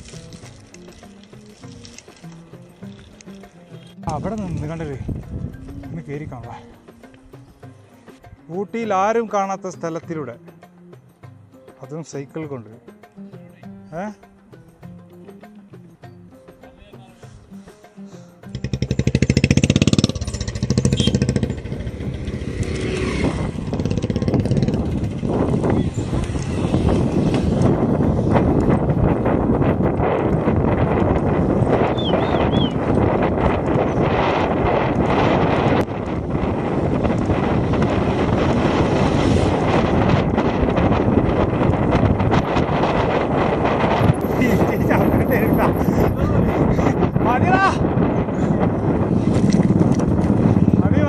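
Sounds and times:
wind buffeting microphone: 4.1s - 6.6s, 18.9s - 51.0s.

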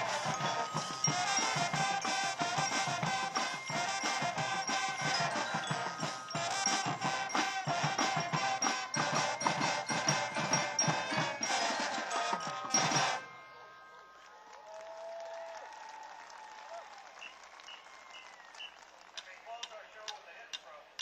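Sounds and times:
steady drum beat: 0.0s - 13.3s
marching band brass: 0.0s - 13.4s.

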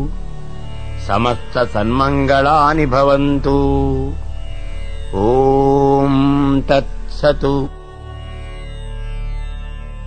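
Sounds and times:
steady low drone: 0.0s - 10.0s
man chanting a prayer: 1.0s - 4.2s, 5.1s - 7.8s.

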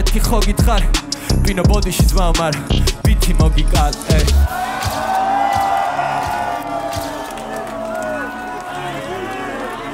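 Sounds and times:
crowd shouting and cheering: 3.6s - 9.9s.

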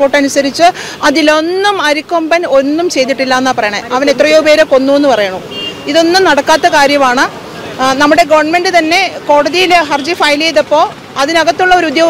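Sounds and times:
woman speaking: 0.0s - 12.0s
vehicle horn toot: 5.5s - 6.8s.

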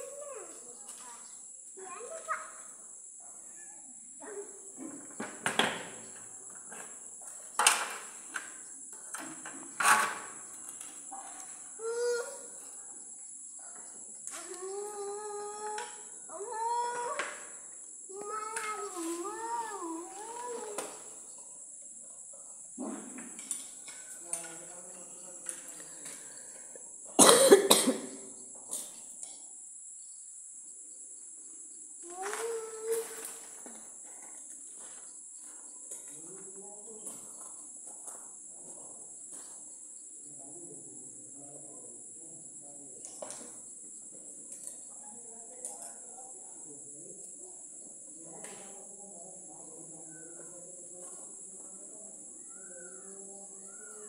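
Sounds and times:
steady high-pitched hiss: 0.0s - 54.0s
faint voices: 45.0s - 54.0s.

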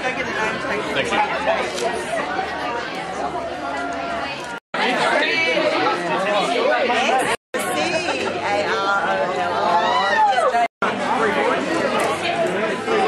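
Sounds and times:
crowd chatter in a hall: 0.0s - 13.0s.

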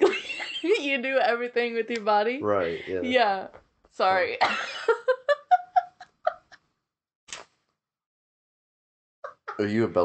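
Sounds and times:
person laughing: 9.3s - 9.8s.

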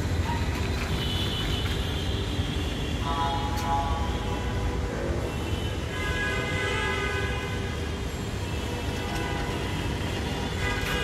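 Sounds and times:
low rumble of city: 0.0s - 11.0s.

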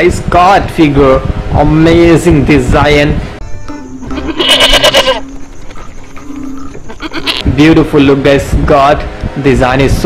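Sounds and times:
background music: 3.4s - 5.4s
goat bleating: 4.0s - 7.6s.

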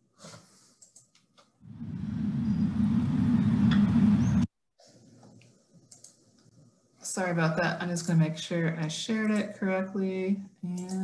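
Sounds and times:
loud low rumbling noise: 1.7s - 4.5s.

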